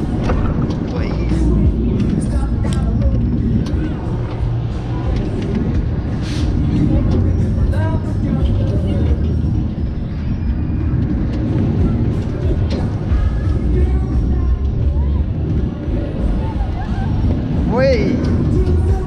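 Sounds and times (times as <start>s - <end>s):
fairground music: 0.0s - 19.0s
wind rumble on microphone: 0.0s - 19.0s.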